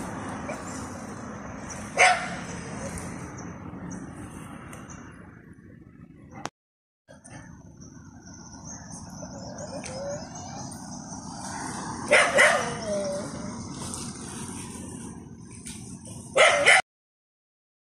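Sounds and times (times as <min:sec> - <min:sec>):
outdoor background noise: 0:00.0 - 0:06.5, 0:07.1 - 0:16.8
dog barking: 0:02.0 - 0:03.0, 0:12.0 - 0:13.2, 0:16.4 - 0:16.8.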